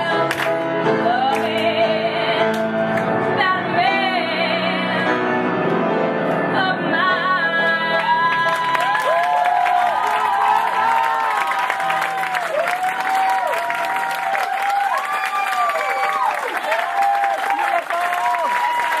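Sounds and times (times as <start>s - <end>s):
audience clapping: 0.3s - 0.6s, 8.0s - 19.0s
audience whooping and cheering: 8.3s - 19.0s.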